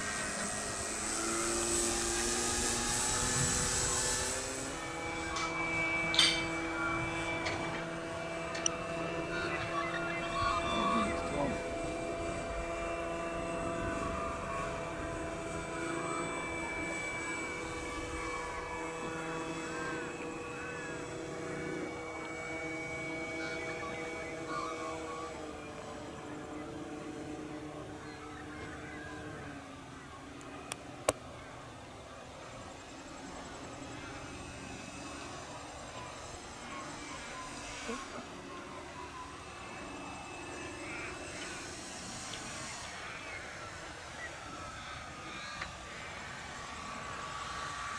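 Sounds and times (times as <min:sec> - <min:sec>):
model plane engine and propeller: 0:00.0 - 0:47.9.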